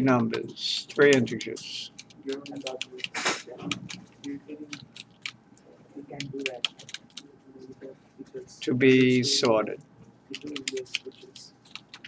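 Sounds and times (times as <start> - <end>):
computer keyboard typing: 0.0 - 5.4, 6.2 - 7.3, 8.8 - 9.7, 10.3 - 12.0.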